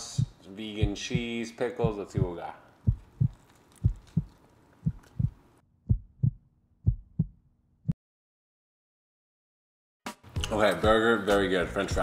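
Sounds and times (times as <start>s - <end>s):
heartbeat thumps: 0.0s - 8.0s.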